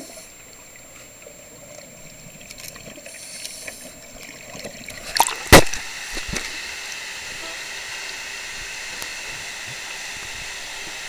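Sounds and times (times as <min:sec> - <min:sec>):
faint underwater clicks and crackles: 0:00.0 - 0:07.1
underwater wash: 0:00.0 - 0:11.0.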